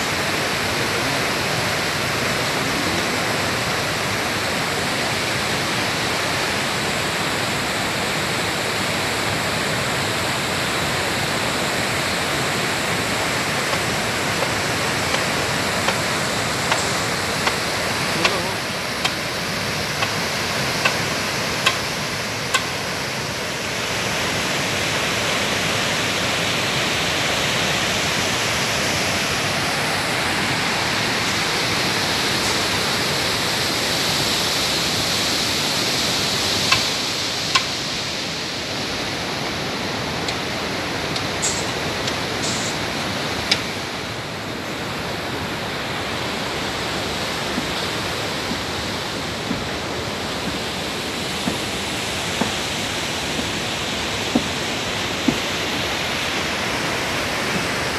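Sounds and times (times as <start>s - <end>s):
turbulent water rushing: 0.0s - 57.9s.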